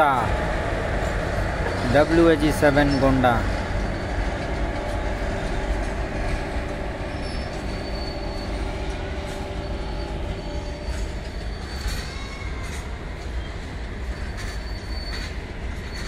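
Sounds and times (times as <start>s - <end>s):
train wheels rumbling on rails: 0.0s - 16.0s
faint high squeal: 7.0s - 16.0s.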